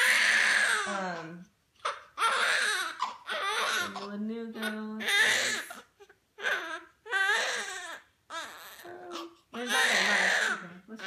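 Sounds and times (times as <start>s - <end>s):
newborn baby crying: 0.0s - 11.0s.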